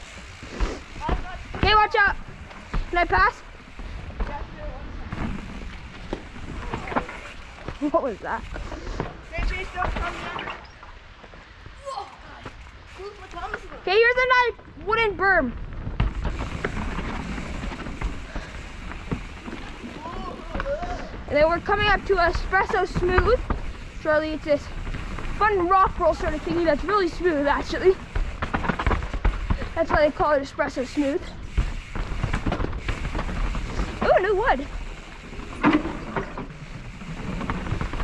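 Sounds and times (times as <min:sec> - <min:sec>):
bike rattling: 0:00.0 - 0:38.0
bike tyre and wind rush: 0:00.0 - 0:38.0.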